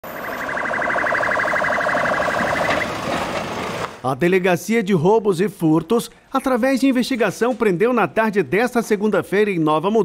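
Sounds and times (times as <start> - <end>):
police siren pulsing: 0.0 - 3.4
street noise: 0.0 - 4.2.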